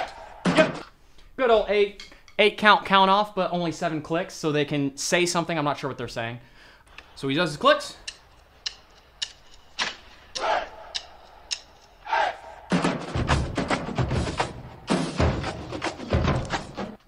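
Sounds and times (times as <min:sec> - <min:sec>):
snare drums fast cadence: 0:00.0 - 0:00.9, 0:12.7 - 0:17.0
drumstick clicks: 0:08.0 - 0:12.0.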